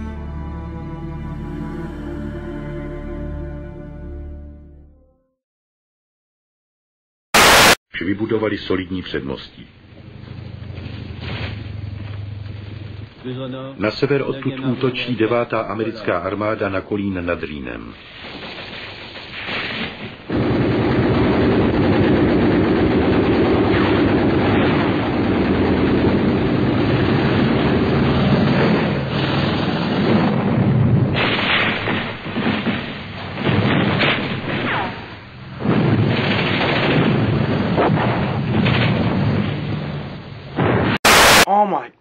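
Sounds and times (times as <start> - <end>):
explosions: 7.4 - 7.8, 18.1 - 41.5.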